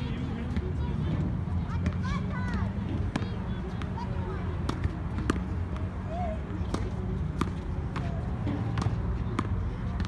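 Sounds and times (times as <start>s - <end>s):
tennis ball bouncing: 1.8s - 4.0s, 4.6s - 5.9s, 6.5s - 10.0s
racket hitting tennis ball: 6.6s - 9.6s.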